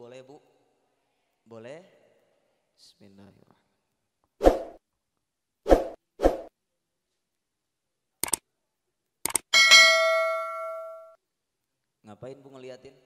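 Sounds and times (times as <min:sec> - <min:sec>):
sharp clicks: 0:08.2 - 0:08.4, 0:09.2 - 0:09.5
bright bell ding: 0:09.6 - 0:11.2.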